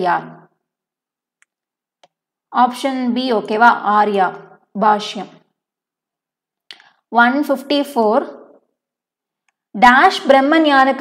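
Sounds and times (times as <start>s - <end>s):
woman speaking: 0.0s - 0.5s, 2.5s - 5.5s, 7.1s - 8.6s, 9.7s - 11.0s.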